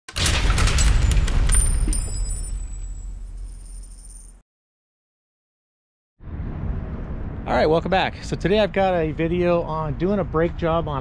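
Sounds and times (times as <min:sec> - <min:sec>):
deep rumble: 0:06.2 - 0:10.0.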